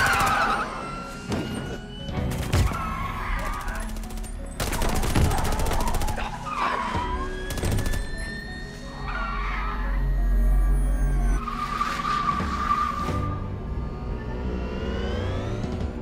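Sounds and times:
film score music rising tone: 0.0 - 16.0.

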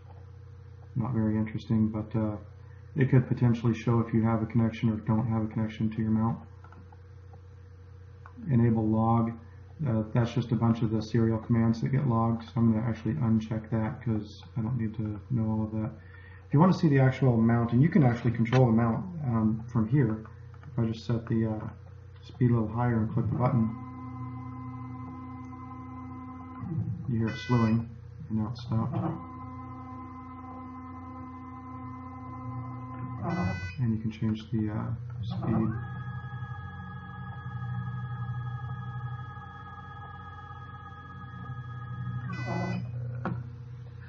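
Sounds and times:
motor whine: 16.0 - 44.0.

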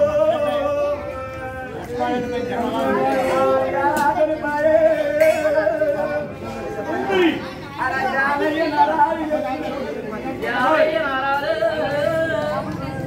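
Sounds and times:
crowd talking and calling out: 0.0 - 13.0.

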